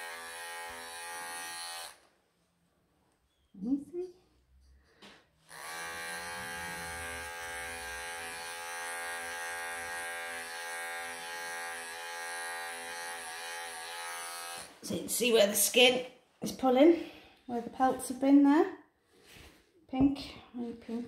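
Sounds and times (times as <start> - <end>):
pet clippers humming: 0.0 - 2.0, 5.5 - 14.8.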